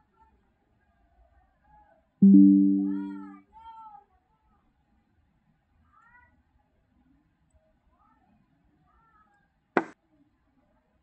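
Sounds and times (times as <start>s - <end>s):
low ringing note: 2.2s - 3.3s.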